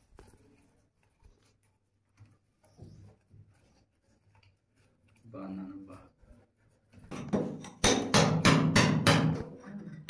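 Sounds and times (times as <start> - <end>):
hammer striking steel chisel: 7.1 - 9.6.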